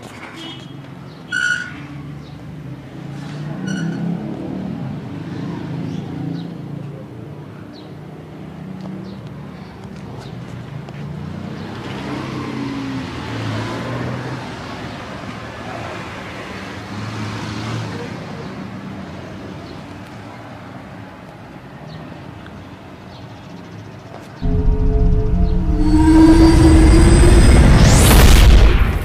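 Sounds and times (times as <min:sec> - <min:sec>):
traffic road noise: 0:00.0 - 0:29.0.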